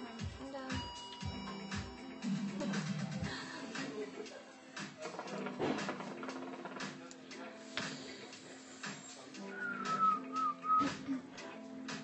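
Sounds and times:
quiet background music: 0:00.0 - 0:12.0
person whistling: 0:09.4 - 0:11.1.

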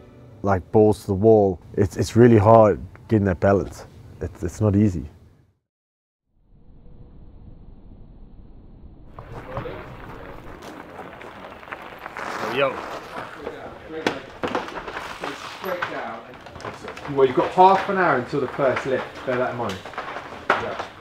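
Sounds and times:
indistinct voices: 0:09.2 - 0:21.0.

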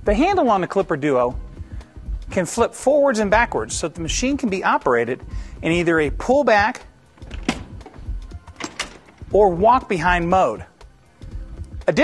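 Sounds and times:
handle clicks and knocks: 0:07.2 - 0:09.4.

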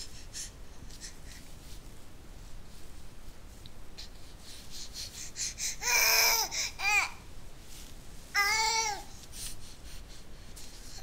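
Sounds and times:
faint rustling and taps: 0:07.6 - 0:08.1.

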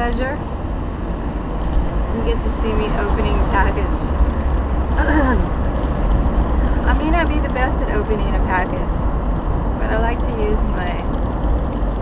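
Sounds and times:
car road and engine noise: 0:00.0 - 0:12.0
person vocal sound: 0:05.0 - 0:05.6.

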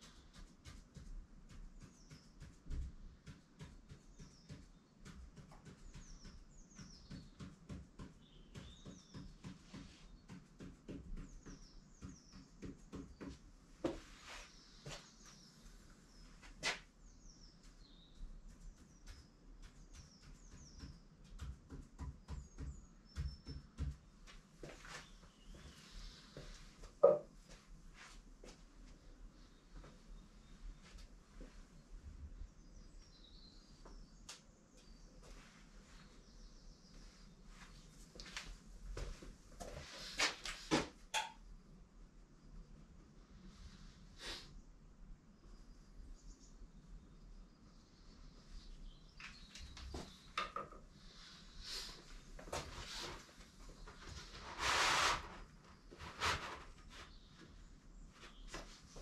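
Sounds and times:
pen tapping and scratching on paper: 0:00.0 - 0:13.5, 0:17.7 - 0:24.2.

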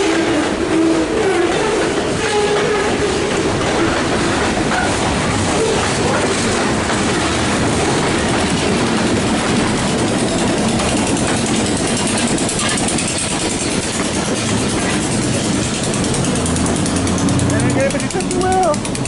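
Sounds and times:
diesel locomotive engines: 0:00.0 - 0:19.0
train wheels on rails: 0:00.0 - 0:19.0.

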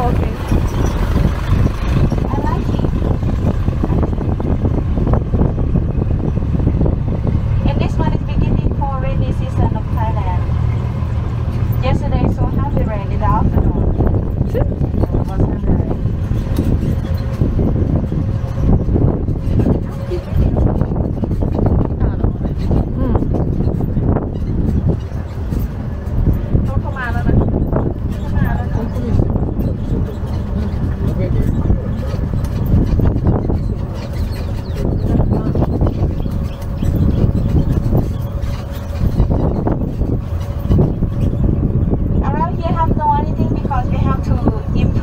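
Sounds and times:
knocks and rattles: 0:00.0 - 0:45.0
vehicle rumbling on track: 0:00.0 - 0:45.0
faint voices: 0:19.3 - 0:24.7, 0:26.5 - 0:39.2.

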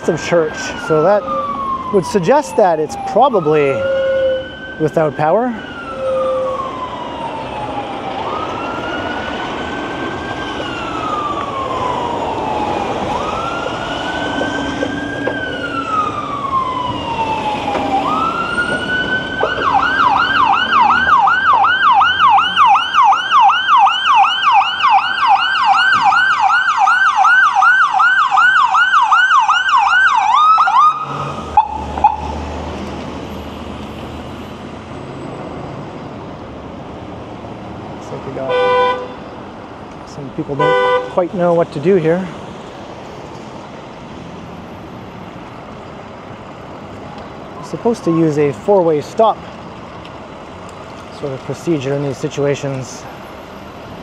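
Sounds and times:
ambulance siren wailing and yelping: 0:00.0 - 0:33.4, 0:40.4 - 0:42.4, 0:47.6 - 0:49.4
street traffic: 0:00.0 - 0:54.0.

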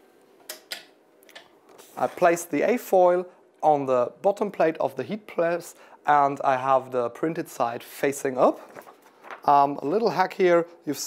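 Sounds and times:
film and paper clicks: 0:08.7 - 0:09.5.

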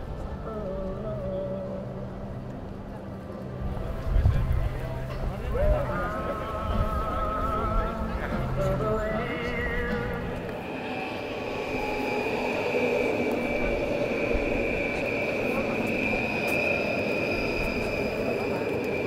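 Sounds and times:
people's voices: 0:00.0 - 0:19.0
train running on track: 0:01.8 - 0:19.0
steady high squeal: 0:08.9 - 0:19.0.

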